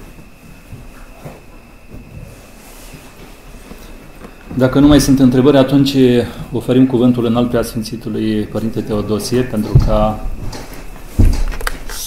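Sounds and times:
faint shuffles: 0.0 - 4.8
high-pitched whine: 0.0 - 12.0.

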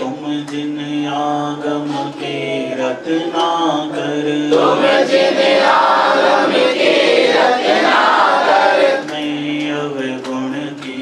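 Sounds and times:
devotional chanting: 0.0 - 11.0.

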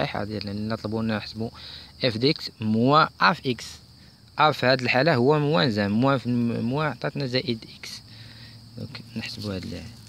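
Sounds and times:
faint hiss: 0.0 - 10.0
man talking: 0.0 - 10.0.

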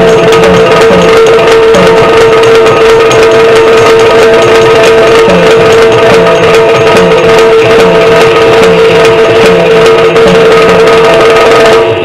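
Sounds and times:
drum strokes: 0.0 - 12.0
high drone: 0.0 - 12.0
small cymbals: 0.0 - 12.0.

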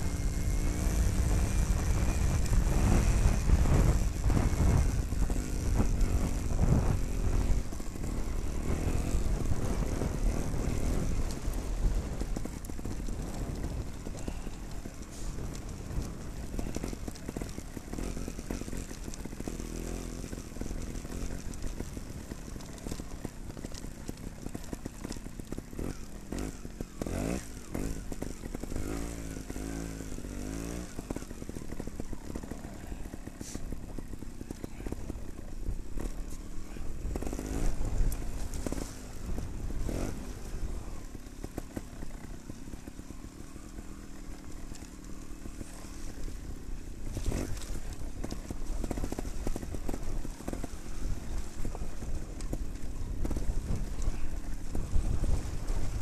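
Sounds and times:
motorcycle engine revving: 0.0 - 56.0
motorcycle knocking over bumps: 0.0 - 56.0.

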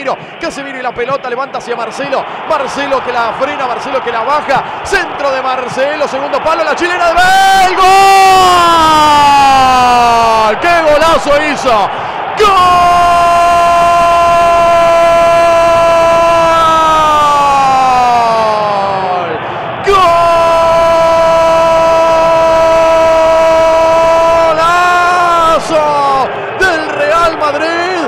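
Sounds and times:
commentator shouting goal cry: 0.0 - 28.0.

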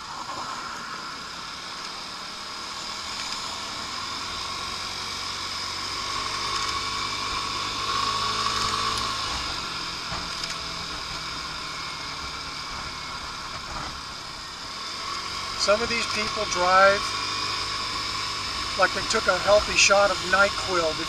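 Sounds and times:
road noise: 0.0 - 21.0
scooter engine running: 0.0 - 21.0.

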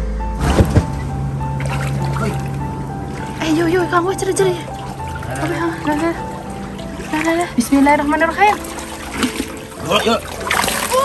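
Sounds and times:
water splashing: 0.4 - 11.0
net dripping water: 1.6 - 11.0.

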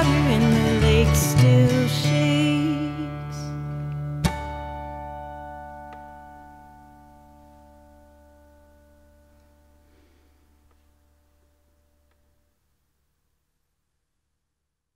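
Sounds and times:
person singing: 0.0 - 3.6
acoustic guitar chord ringing: 0.0 - 12.0.

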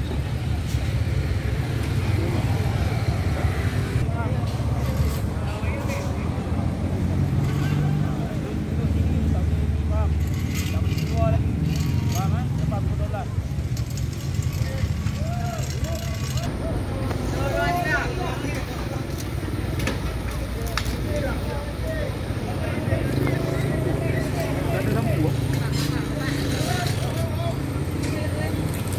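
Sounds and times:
low rumble of car traffic: 0.0 - 28.9
people talking: 1.9 - 13.6, 14.4 - 28.9.

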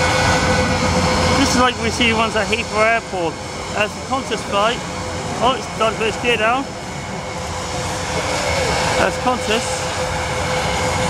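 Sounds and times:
jet airliner rumble: 0.0 - 11.0.

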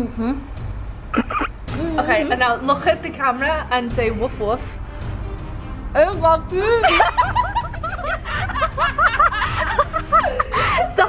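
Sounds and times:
young women laughing: 6.8 - 11.0.

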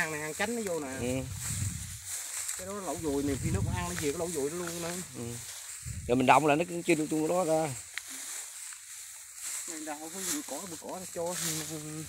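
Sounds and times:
high-pitched outdoor hiss: 0.0 - 12.0
man talking: 0.8 - 1.4, 2.6 - 7.8.

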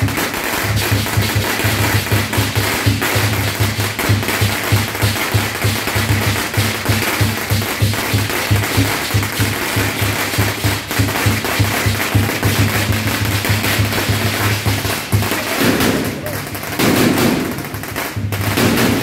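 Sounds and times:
drum beating evenly: 0.0 - 19.0.

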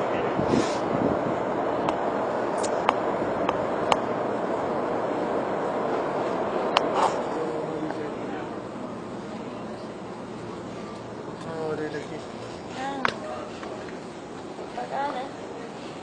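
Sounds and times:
distant murmur of voices: 0.0 - 16.0.

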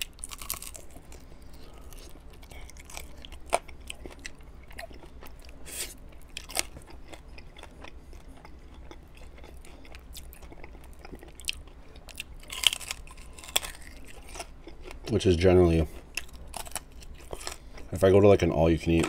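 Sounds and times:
chewing chicken wings: 0.0 - 18.0.

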